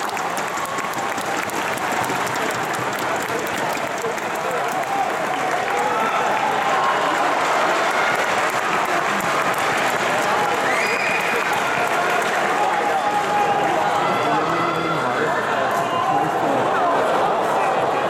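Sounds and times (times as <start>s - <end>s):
crowd applauding and cheering: 0.0s - 18.0s
spectators shouting: 4.4s - 18.0s.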